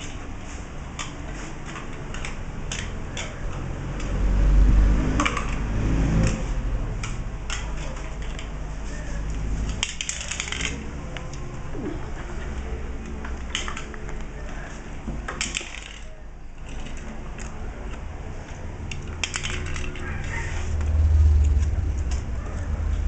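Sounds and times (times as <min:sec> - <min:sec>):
low rumble: 0:20.8 - 0:23.0.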